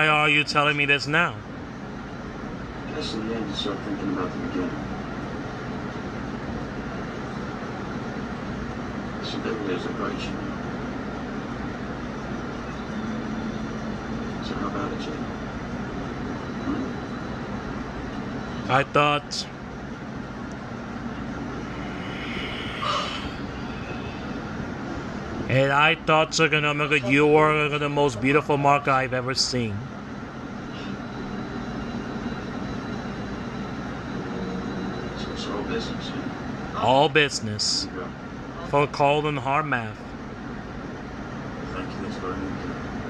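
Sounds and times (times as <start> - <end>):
television soundtrack rumbling: 2.4 - 32.6
film background ambience from television: 14.1 - 17.2.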